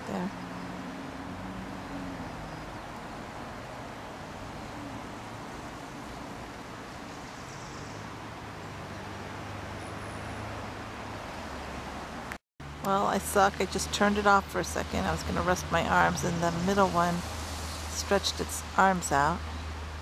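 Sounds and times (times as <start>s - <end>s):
distant road traffic rumble: 0.0s - 20.0s.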